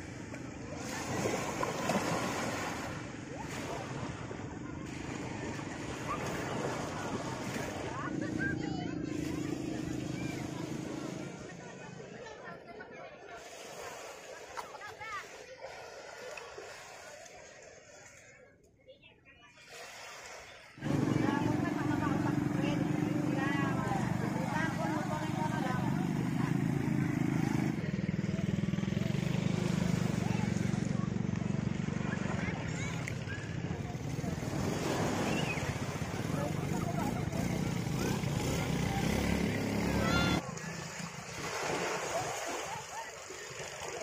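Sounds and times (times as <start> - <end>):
people talking and calling: 0.0 - 44.0
engine running: 20.8 - 42.8.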